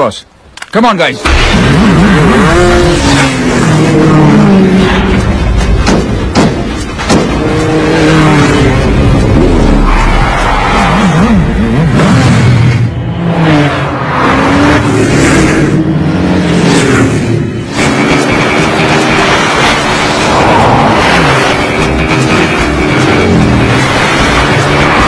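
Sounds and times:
motorcycle engines revving: 1.2s - 6.2s, 7.0s - 25.0s
sharp knocks: 5.6s - 7.4s.

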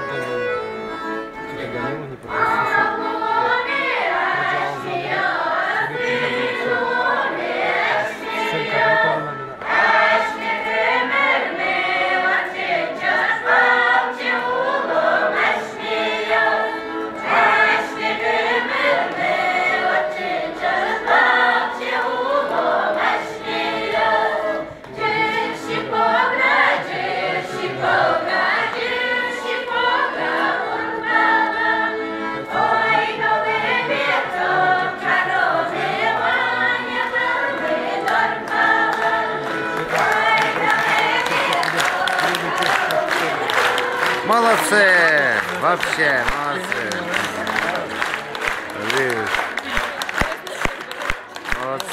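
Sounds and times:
mixed choir singing folk song: 0.0s - 51.9s.

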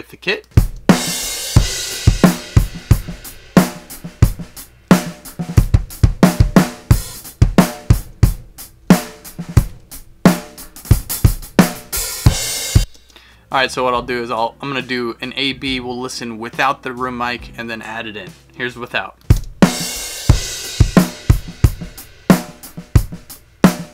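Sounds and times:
drum kit groove: 0.0s - 23.9s.

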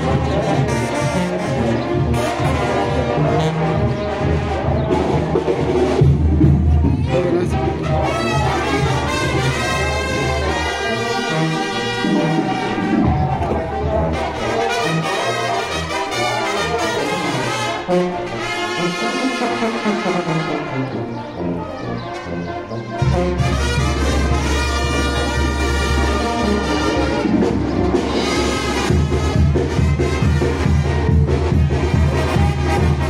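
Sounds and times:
brass band playing: 0.0s - 33.0s.

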